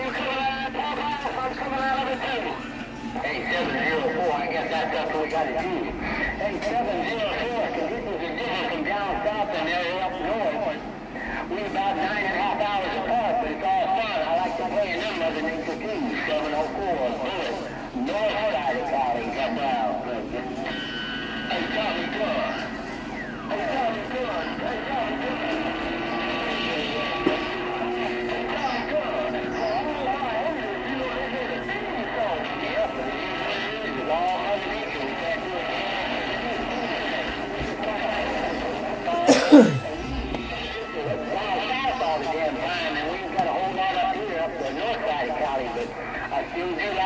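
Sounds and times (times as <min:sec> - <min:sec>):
garbled radio voices: 0:00.0 - 0:47.0.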